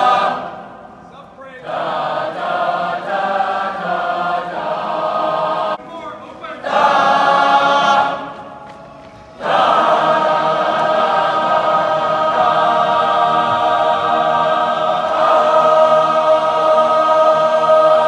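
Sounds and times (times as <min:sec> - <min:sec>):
group singing chorale in harmony: 0:00.0 - 0:00.9, 0:01.6 - 0:05.8, 0:06.6 - 0:08.6, 0:09.3 - 0:18.0.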